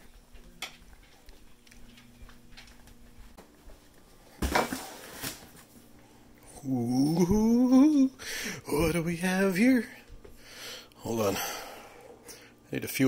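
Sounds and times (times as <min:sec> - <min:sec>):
cardboard box thump on tiles: 0:04.4 - 0:05.4
cardboard scraping and rustling: 0:04.4 - 0:05.6.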